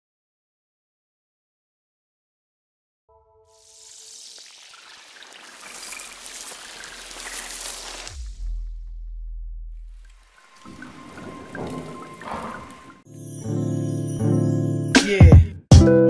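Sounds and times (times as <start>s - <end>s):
deep bass hit: 8.2s - 10.2s.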